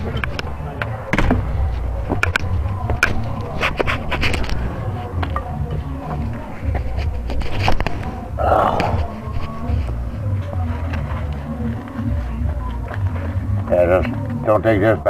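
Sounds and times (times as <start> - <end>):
muffled indistinct voices: 0.0 - 15.0.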